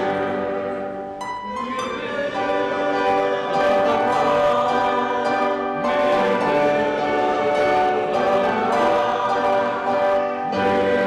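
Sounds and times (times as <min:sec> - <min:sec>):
congregation singing a hymn: 0:00.0 - 0:11.0
instrumental accompaniment: 0:00.0 - 0:11.0.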